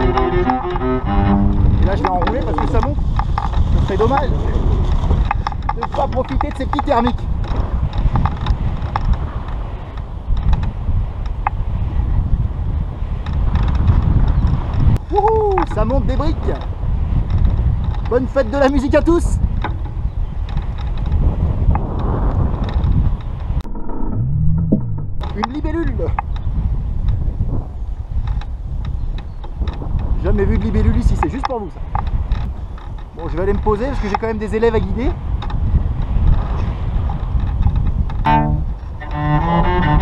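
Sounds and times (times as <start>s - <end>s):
wind buffeting microphone: 0.0s - 40.0s
small clicks and creaks: 1.5s - 4.3s, 5.0s - 11.6s, 13.2s - 18.6s, 19.6s - 27.2s, 28.2s - 40.0s.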